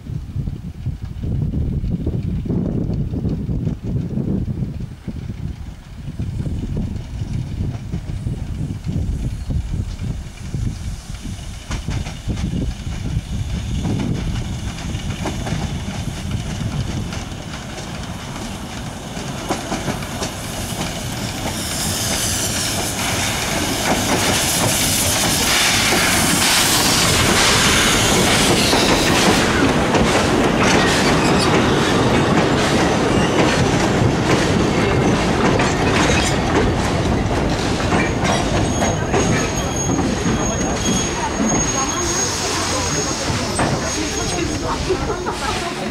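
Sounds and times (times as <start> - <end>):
steam train passing: 0.2 - 45.9
train wheels clicking: 0.6 - 45.9
high-pitched steam hiss: 9.2 - 16.3, 18.5 - 29.7, 37.5 - 45.9.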